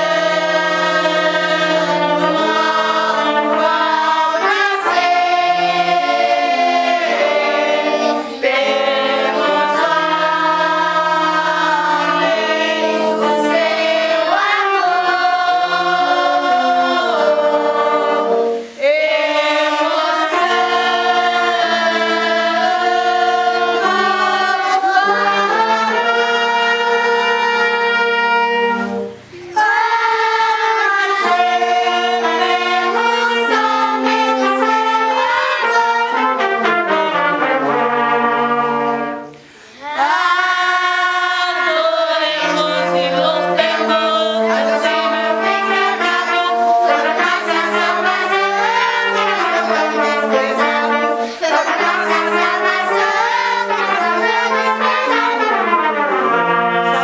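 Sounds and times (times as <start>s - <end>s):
brass band playing chords: 0.0s - 57.0s
girls and women singing: 0.0s - 57.0s.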